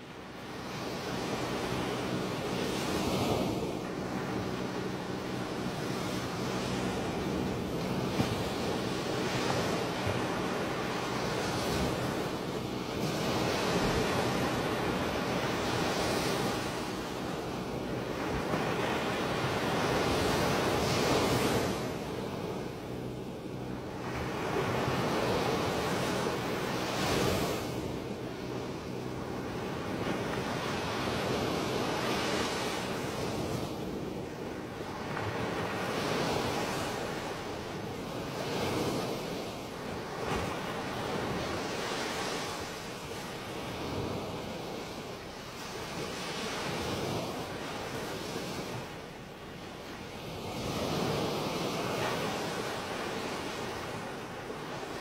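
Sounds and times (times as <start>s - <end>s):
waves and floodwater rushing: 0.0s - 55.0s.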